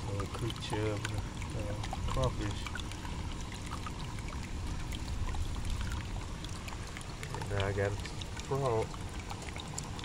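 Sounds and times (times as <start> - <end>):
steady low hum: 0.0 - 10.0
water trickling into a tank: 0.0 - 10.0.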